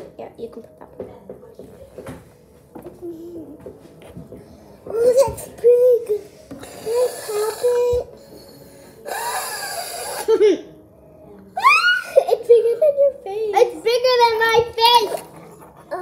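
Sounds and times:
child voice sounds: 0:04.9 - 0:08.1
child blowing through straw: 0:06.6 - 0:10.4
child squealing and laughing: 0:11.6 - 0:12.5.

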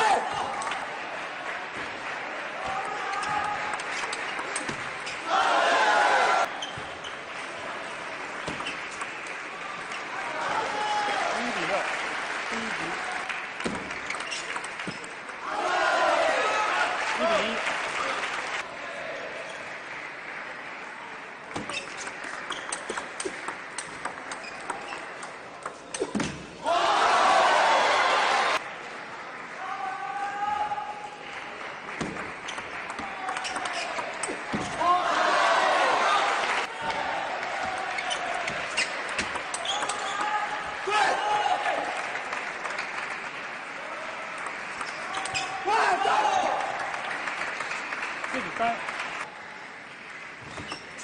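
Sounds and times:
voices shouting in a hall: 0:05.2 - 0:06.6, 0:15.4 - 0:17.7, 0:26.6 - 0:28.6, 0:29.6 - 0:31.2, 0:33.0 - 0:42.0, 0:44.9 - 0:46.9.

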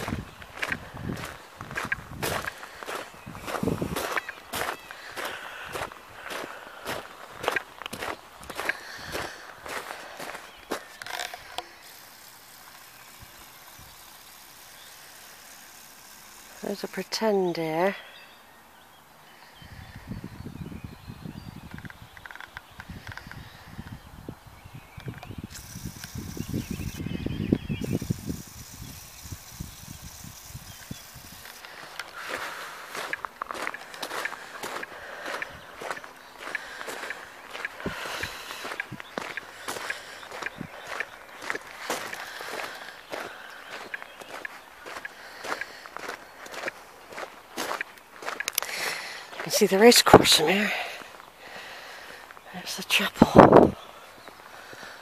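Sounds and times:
footsteps crunching on gravel: 0:00.0 - 0:13.2, 0:30.1 - 0:51.4.

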